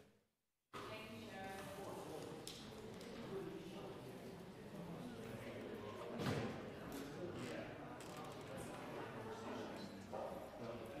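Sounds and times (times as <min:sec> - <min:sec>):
faint indistinct conversation: 0:00.8 - 0:11.0.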